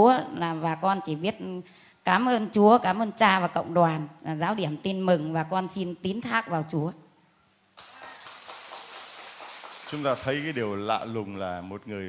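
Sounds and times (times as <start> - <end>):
crowd applauding: 7.8 - 11.4.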